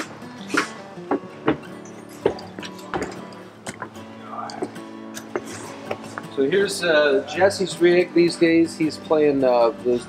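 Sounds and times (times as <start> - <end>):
footsteps going up stairs: 0.0 - 4.0.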